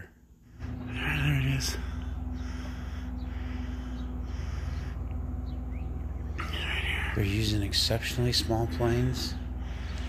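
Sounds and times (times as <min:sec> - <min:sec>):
faint steady hum: 0:00.0 - 0:10.0
low steady rumble: 0:00.0 - 0:10.0
faint bird chirps: 0:00.9 - 0:07.4.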